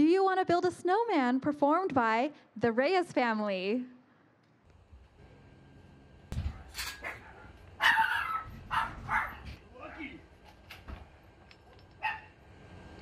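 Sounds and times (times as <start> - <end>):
dog barking: 7.0 - 9.6, 12.0 - 12.4.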